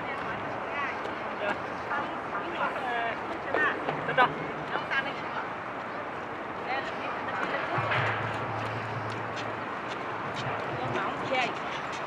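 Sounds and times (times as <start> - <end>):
city background noise: 0.0 - 12.0.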